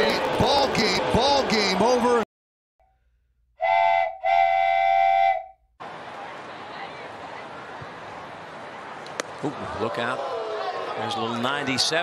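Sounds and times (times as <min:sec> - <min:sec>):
whistle blasts: 0:03.6 - 0:05.7
crowd murmur: 0:05.8 - 0:12.0.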